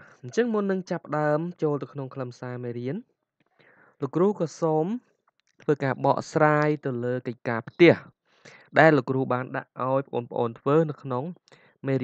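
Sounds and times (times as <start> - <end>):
person speaking: 0.0 - 3.0, 4.0 - 5.0, 5.7 - 12.0.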